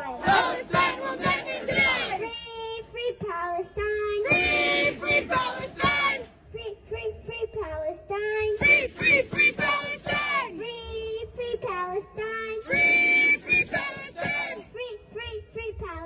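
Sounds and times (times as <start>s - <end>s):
crowd chanting in unison: 0.0s - 2.3s, 4.2s - 6.4s, 8.6s - 10.6s, 12.7s - 14.7s
child chanting into a microphone: 0.0s - 9.2s, 9.9s - 13.6s, 14.5s - 16.0s.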